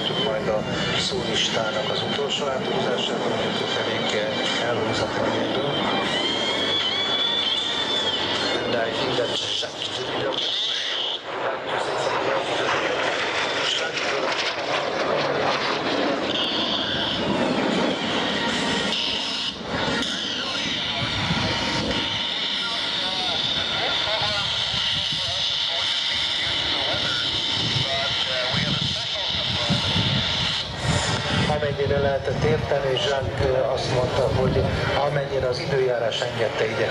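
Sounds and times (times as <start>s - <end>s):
jet engines with high whine: 0.0s - 36.9s.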